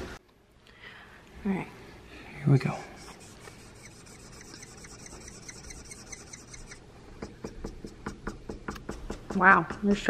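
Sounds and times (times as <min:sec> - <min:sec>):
marker scratching on wood: 0:02.7 - 0:10.0.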